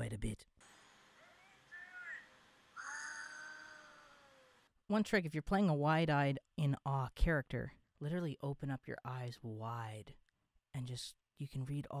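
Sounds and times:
cartoon voice squeaky chirps: 0:01.2 - 0:04.2.

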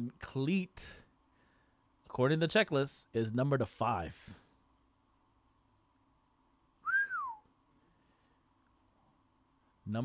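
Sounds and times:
person whistling: 0:06.8 - 0:07.5.

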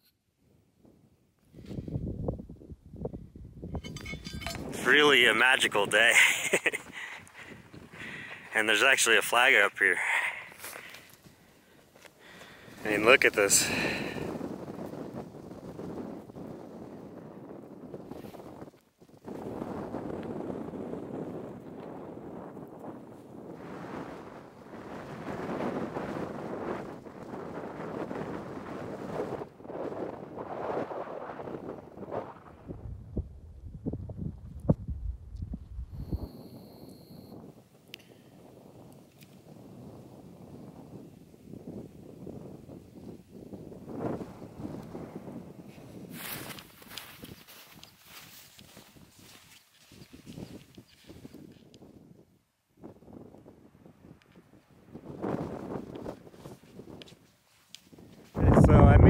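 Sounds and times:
wind gusting over microphone: 0:00.8 - 0:11.5, 0:12.2 - 0:57.2, 0:57.9 - 0:59.0.

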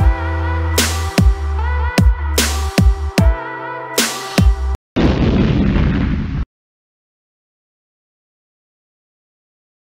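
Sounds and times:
cartoon explosion with low rumble: 0:05.0 - 0:06.5.

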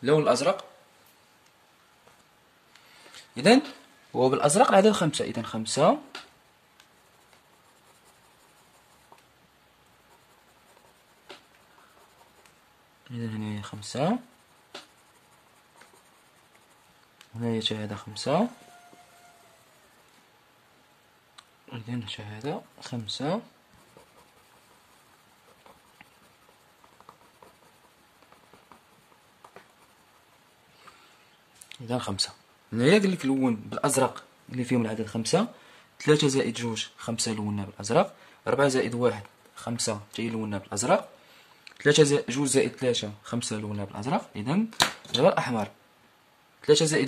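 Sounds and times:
pencil scratching on paper: 0:06.3 - 0:12.8, 0:13.6 - 0:20.1, 0:22.5 - 0:30.6.

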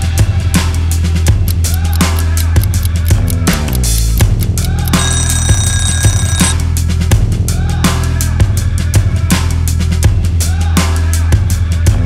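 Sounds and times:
music with drum beat: 0:00.0 - 0:12.0
electronic timer alarm: 0:01.5 - 0:06.6.

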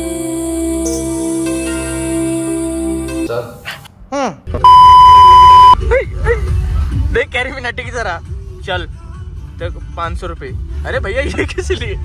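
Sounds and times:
censor bleep: 0:04.6 - 0:05.8.

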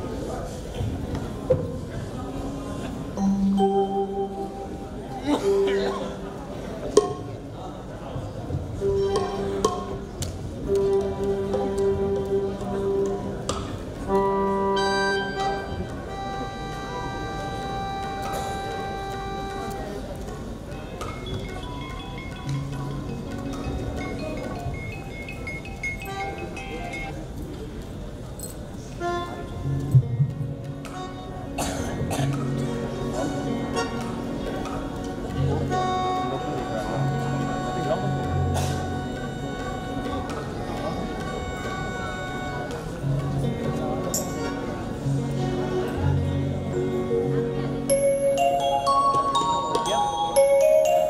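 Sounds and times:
live band playing: 0:08.8 - 0:20.0, 0:29.0 - 0:51.0.

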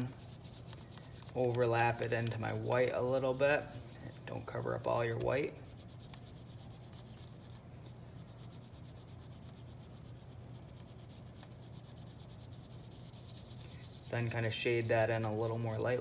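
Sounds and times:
pastel stick rubbing on paper: 0:00.0 - 0:16.0.

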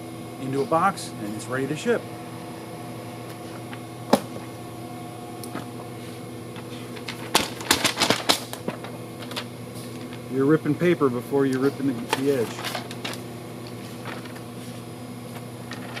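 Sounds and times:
machines humming: 0:00.0 - 0:16.0.

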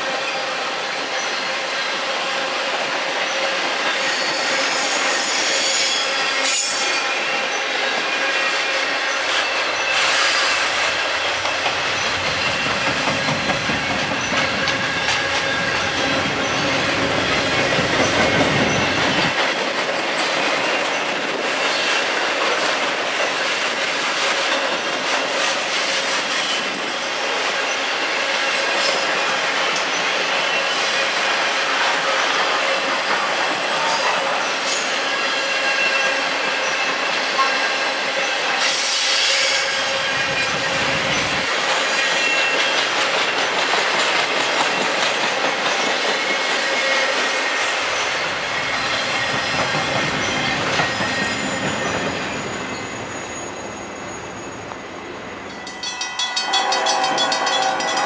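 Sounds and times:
train wheels rumbling on rail: 0:00.0 - 0:58.0
high-pitched wheel squeal: 0:03.3 - 0:10.7, 0:48.5 - 0:55.5.

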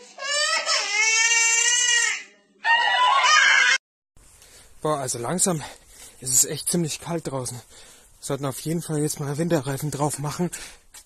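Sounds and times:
baby crying: 0:00.0 - 0:03.8.

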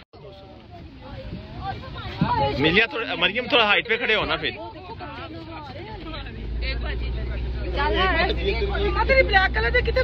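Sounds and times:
people talking: 0:00.2 - 0:10.0.

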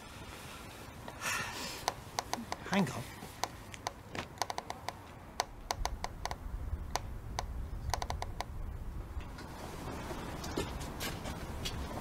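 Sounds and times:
sharp irregular clicks and taps: 0:01.8 - 0:02.8, 0:03.4 - 0:08.5.

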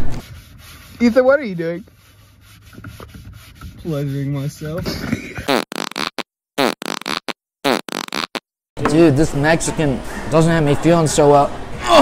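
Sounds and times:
fart noises: 0:05.4 - 0:08.4.

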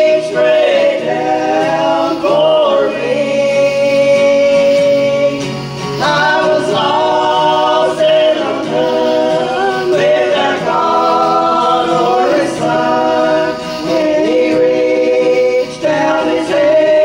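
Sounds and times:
acoustic guitar: 0:00.0 - 0:17.0
vocal group singing in harmony: 0:00.0 - 0:17.0.

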